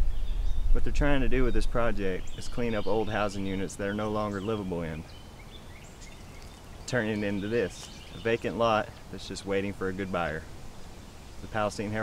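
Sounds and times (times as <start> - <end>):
outdoor background noise: 0.0 - 12.0
man speaking: 0.8 - 5.1, 6.9 - 10.5, 11.4 - 12.0.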